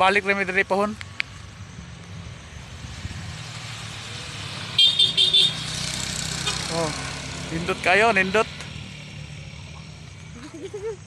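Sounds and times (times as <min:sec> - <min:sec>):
vehicle engine rumble: 0:00.0 - 0:11.0.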